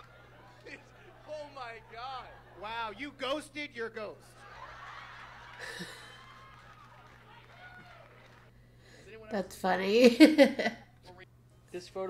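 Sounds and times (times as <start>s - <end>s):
audience laughing: 0.0s - 7.3s, 10.1s - 10.9s.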